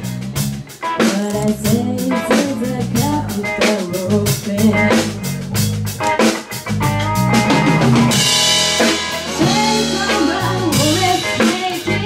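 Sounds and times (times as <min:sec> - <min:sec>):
jazz band playing live: 0:00.0 - 0:12.0.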